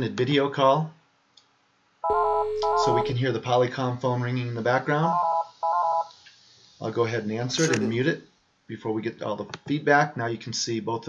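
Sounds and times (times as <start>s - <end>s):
desk phone ringing: 2.0s - 3.2s.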